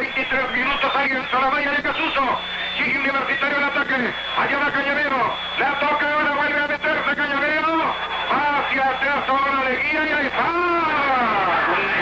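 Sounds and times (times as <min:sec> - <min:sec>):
man commentating fast on radio: 0:00.0 - 0:12.0.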